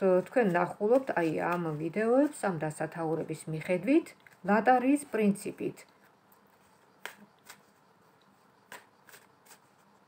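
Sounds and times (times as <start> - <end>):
cards clicking while shuffled: 7.0 - 7.7, 8.7 - 9.6.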